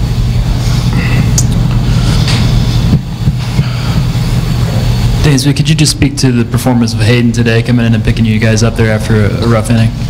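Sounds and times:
loud steady low hum: 0.0s - 10.0s
rumbling background noise: 0.0s - 10.0s.

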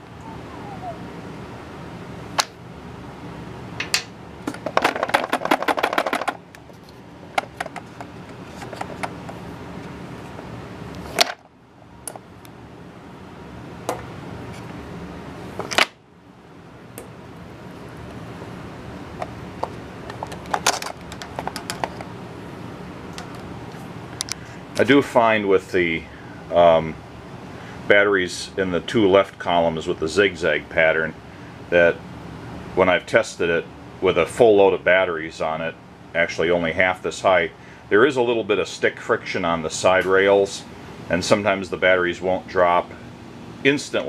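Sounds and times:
steady background hum: 0.0s - 44.0s
metal batteries clicking and clattering: 20.0s - 22.1s.

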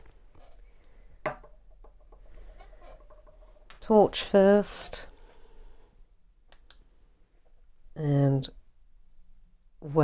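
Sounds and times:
small objects handled on wooden desk: 0.0s - 3.8s.

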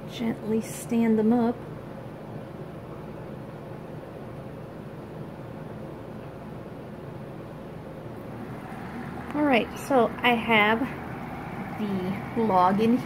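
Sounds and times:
air pump humming: 8.2s - 13.0s.

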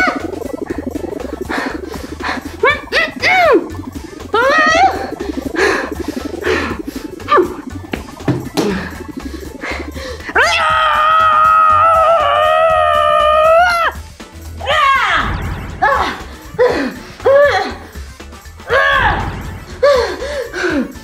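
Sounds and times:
children's music: 0.0s - 21.0s
woman wailing crying: 4.4s - 5.2s, 15.8s - 17.8s.

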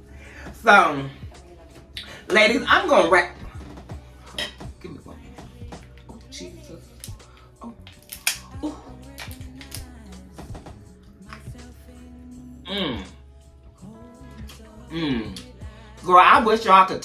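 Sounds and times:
quiet background music: 0.0s - 17.0s
lobster shell cracking: 7.8s - 8.5s, 9.1s - 9.9s.

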